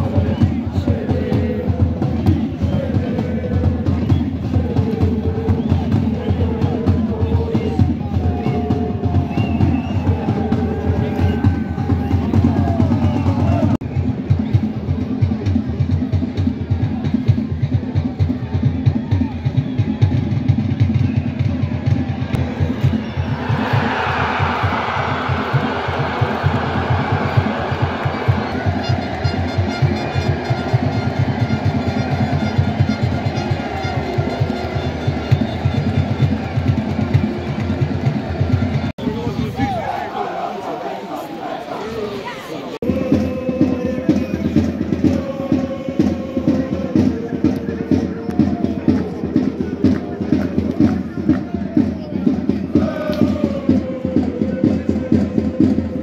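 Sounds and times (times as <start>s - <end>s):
voices singing: 0.0s - 13.8s, 22.4s - 56.0s
loud music with driving drum beat: 42.8s - 56.0s.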